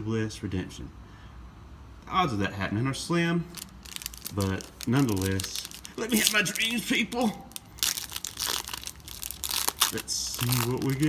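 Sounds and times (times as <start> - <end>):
foil wrapper tearing and crinkling: 3.6 - 11.0.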